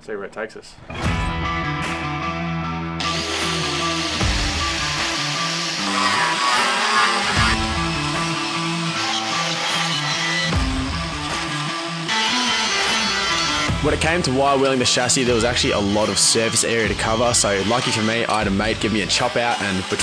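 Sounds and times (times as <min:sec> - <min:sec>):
background guitar music: 0:00.8 - 0:20.0.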